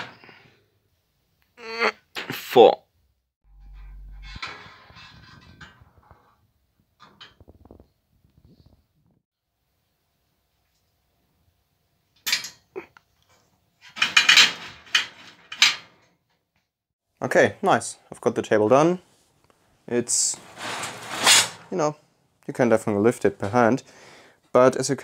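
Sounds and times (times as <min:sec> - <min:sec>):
metal clattering and scraping: 0:03.5 - 0:07.4, 0:20.1 - 0:21.7.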